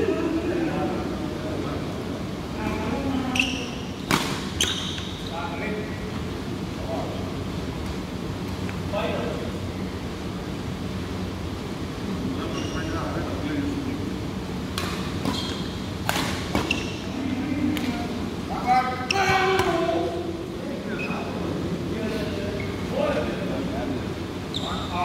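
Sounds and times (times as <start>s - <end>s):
steady hall hum: 0.0s - 25.0s
rackets hitting shuttlecock: 4.0s - 4.8s, 14.7s - 16.8s.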